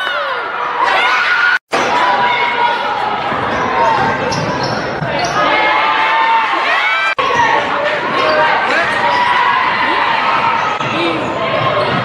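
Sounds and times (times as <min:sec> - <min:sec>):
sneakers squeaking: 0:03.2 - 0:05.8, 0:07.2 - 0:12.0.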